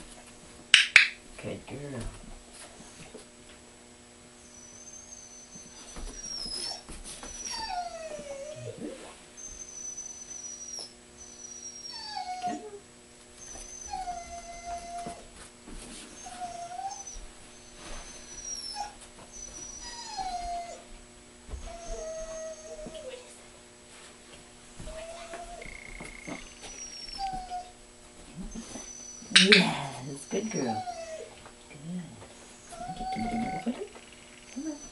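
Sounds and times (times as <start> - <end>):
dog whining: 4.4 - 15.3, 16.2 - 20.9, 21.5 - 23.4, 24.8 - 34.9.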